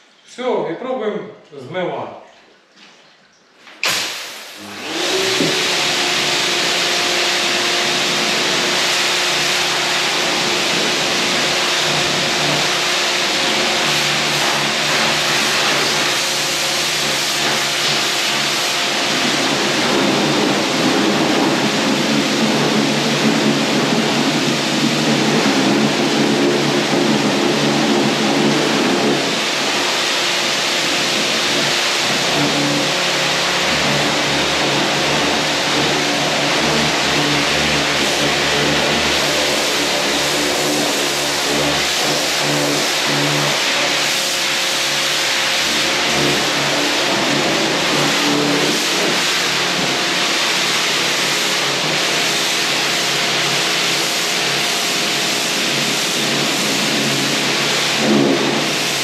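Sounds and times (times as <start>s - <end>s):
pressure washer motor humming: 3.8s - 59.0s
water jet hissing on concrete: 3.8s - 59.0s.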